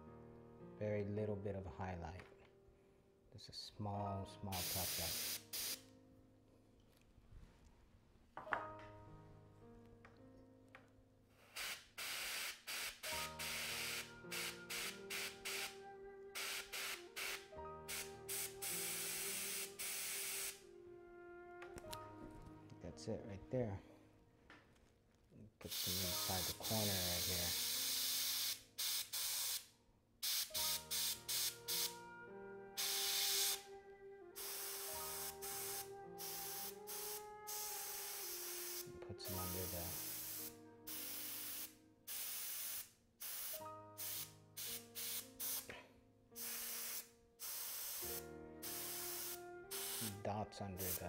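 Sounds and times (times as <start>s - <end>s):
airbrush spraying hiss: 4.5s - 5.8s, 11.4s - 15.8s, 16.4s - 20.6s, 25.6s - 32.0s, 32.8s - 33.6s, 34.4s - 45.7s, 46.4s - 50.2s, 50.8s - 51.0s.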